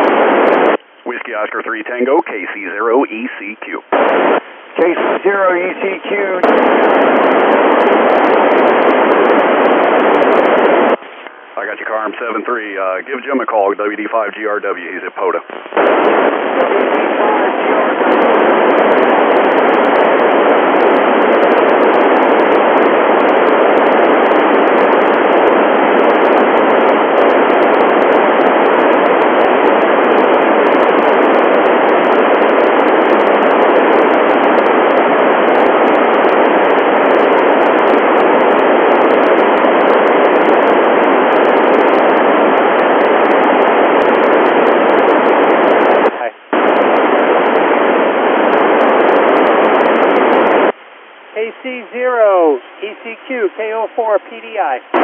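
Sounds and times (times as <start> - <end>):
radio static hiss: 0.0 - 55.0.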